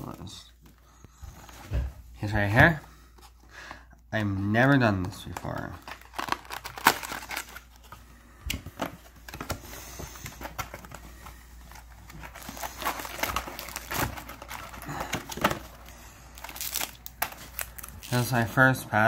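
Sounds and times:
plastic wrapping crinkling: 4.9s - 18.6s.

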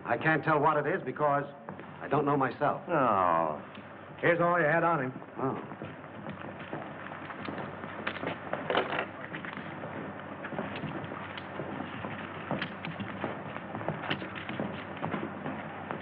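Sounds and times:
film soundtrack hiss: 0.0s - 16.0s
clicks and crackles: 5.2s - 16.0s.

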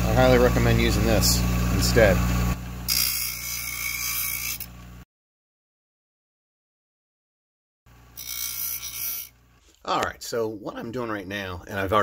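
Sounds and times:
bench grinder motor hum: 0.0s - 5.0s, 7.9s - 9.8s.

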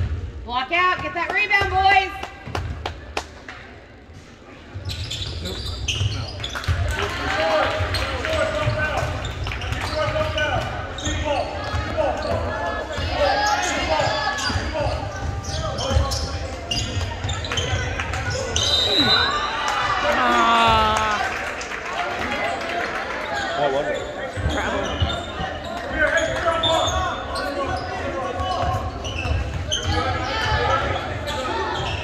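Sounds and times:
many overlapping voices: 3.8s - 32.0s.

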